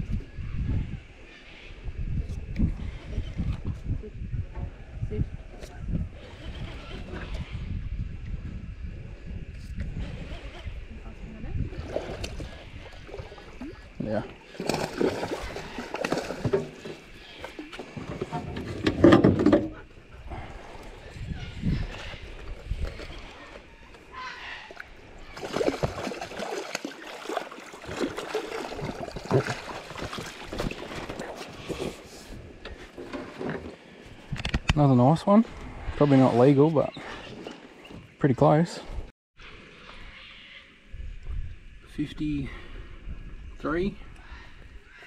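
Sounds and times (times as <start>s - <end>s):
fish splashing at surface: 14.4s - 17.0s, 25.3s - 31.3s.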